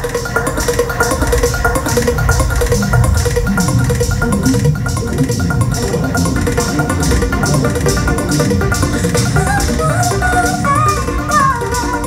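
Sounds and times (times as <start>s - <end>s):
loud electronic club music: 0.0s - 12.0s.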